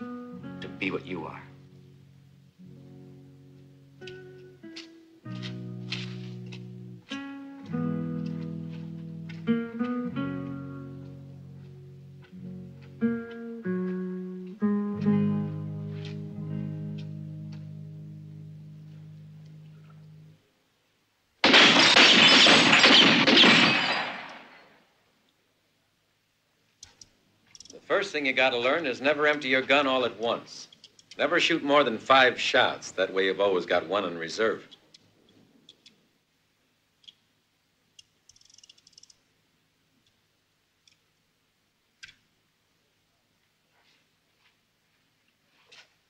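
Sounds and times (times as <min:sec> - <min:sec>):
glass bottles shattering: 0:21.5 - 0:24.2
faint clicks: 0:30.7 - 0:31.2, 0:34.7 - 0:36.0, 0:37.9 - 0:39.2, 0:40.8 - 0:41.1, 0:42.0 - 0:42.3.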